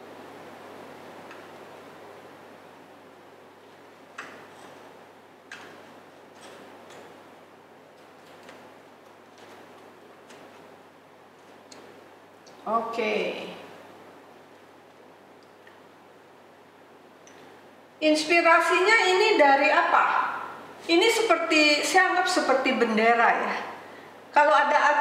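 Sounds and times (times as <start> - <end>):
background hiss: 0.0 - 25.0
stems rustling: 3.6 - 12.8.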